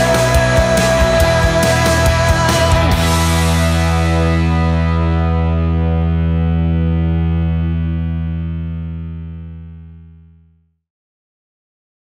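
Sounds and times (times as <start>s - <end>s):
distorted electric guitar chord ringing: 0.0s - 10.4s.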